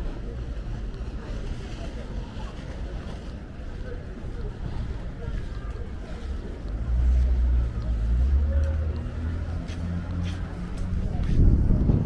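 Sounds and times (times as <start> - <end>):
heavy vehicle engine drone: 0.0 - 12.0.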